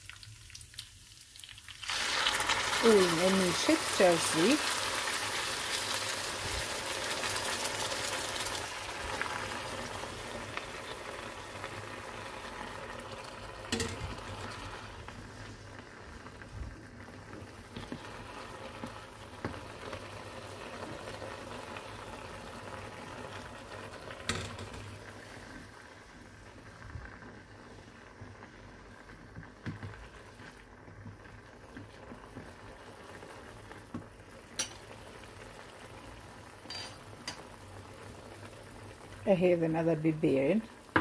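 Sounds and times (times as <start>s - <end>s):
rice and onions sizzling in a pan: 0.0s - 41.0s.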